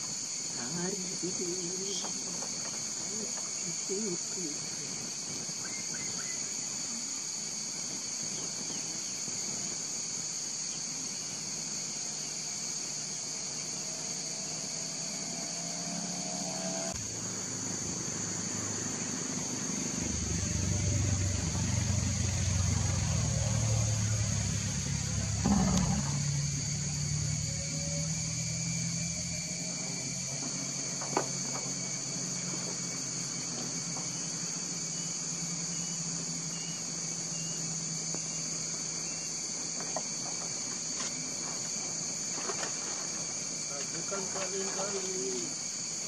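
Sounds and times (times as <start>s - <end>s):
forest insects droning: 0.0s - 46.0s.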